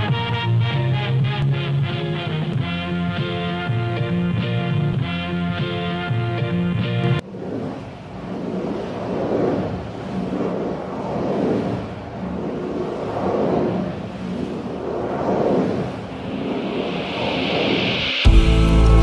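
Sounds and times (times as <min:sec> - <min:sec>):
surf-like whooshing: 0:00.0 - 0:19.0
rising hiss: 0:10.5 - 0:19.0.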